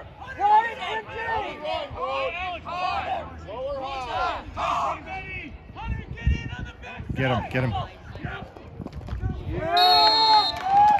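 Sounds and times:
referee's whistle blast: 9.8 - 10.6.

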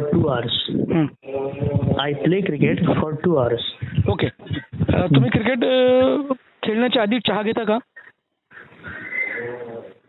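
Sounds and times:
person's drawn-out hesitation sound: 0.0 - 2.2, 3.7 - 6.5.

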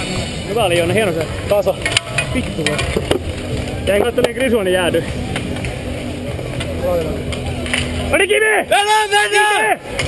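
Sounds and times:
indistinct shouting voices: 8.1 - 10.0.

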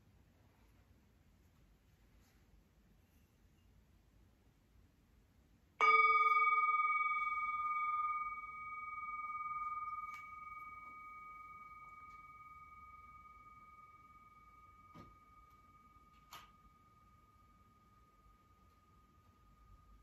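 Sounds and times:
meditation bell ringing: 5.8 - 20.0.

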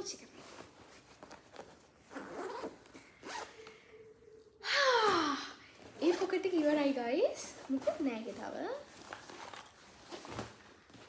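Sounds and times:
bag fabric rustling: 0.4 - 3.5, 5.8 - 11.0
backpack zipper pulled open: 2.1 - 3.5.

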